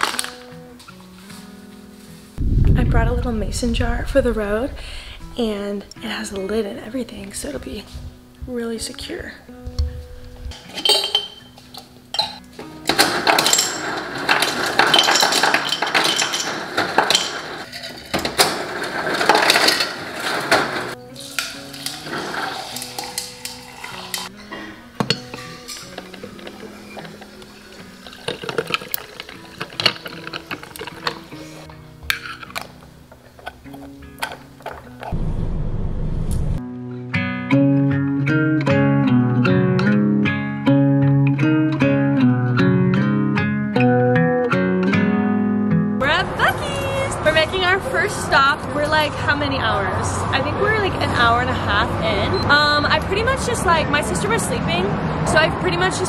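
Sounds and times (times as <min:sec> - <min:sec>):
acoustic guitar music: 0:00.0 - 0:35.8, 0:36.6 - 0:56.0
ice cubes clinking in glass jar: 0:12.2 - 0:24.3, 0:25.7 - 0:31.2
coffee pouring over ice: 0:19.0 - 0:24.3, 0:25.4 - 0:31.3.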